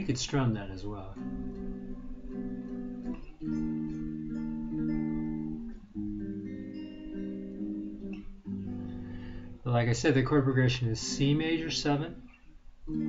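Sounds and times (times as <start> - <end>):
electric guitar strumming chords: 0.0 - 13.0.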